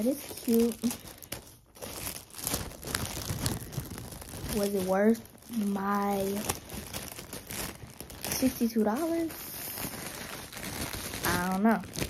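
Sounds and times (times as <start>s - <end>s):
knit hat rustling and crinkling: 0.0s - 12.0s.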